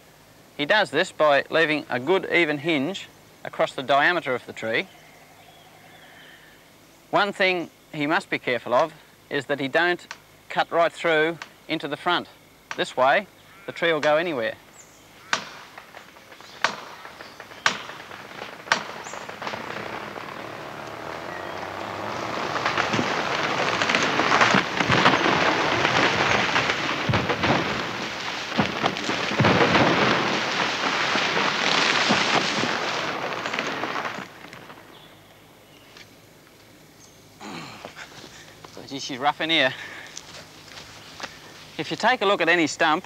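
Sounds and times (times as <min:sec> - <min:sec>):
tree trunk cracking: 0:15.2 - 0:35.2, 0:39.8 - 0:42.3
tree crashing through bush: 0:15.2 - 0:35.5, 0:37.4 - 0:43.0.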